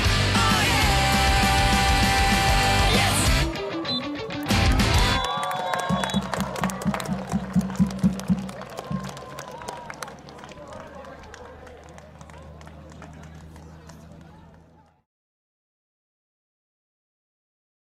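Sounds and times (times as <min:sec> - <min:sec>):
players shouting: 0:00.1 - 0:14.9
quick rhythmic pulse: 0:01.6 - 0:10.1
referee's whistle: 0:02.8 - 0:03.2, 0:03.8 - 0:04.3, 0:05.0 - 0:06.4.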